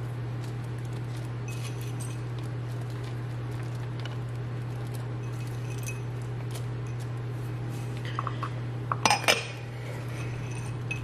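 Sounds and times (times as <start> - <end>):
steady low hum: 0.0 - 11.0
ceramic ramekins clinking: 8.2 - 9.6.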